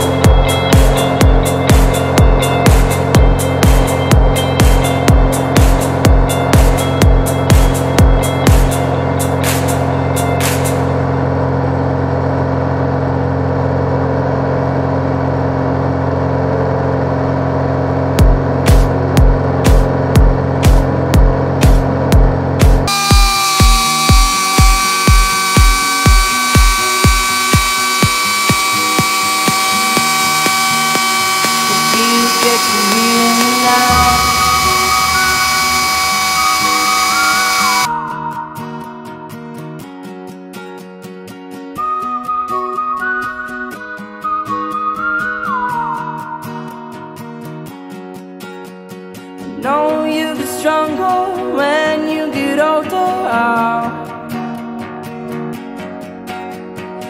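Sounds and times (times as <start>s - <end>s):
synth chords: 0.0s - 9.8s, 22.2s - 37.9s
kick drum beat: 0.2s - 8.8s, 18.2s - 28.2s
synth melody: 22.9s - 37.9s.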